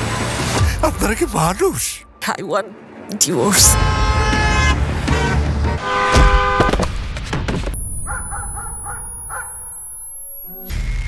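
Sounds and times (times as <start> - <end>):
high-pitched ringing tone: 7.8 - 10.9.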